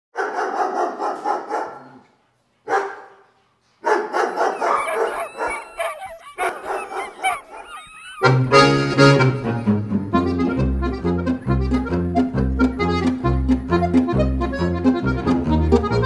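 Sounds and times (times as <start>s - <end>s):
huskies barking and yipping: 3.8s - 12.1s
dogs howling: 4.2s - 10.0s.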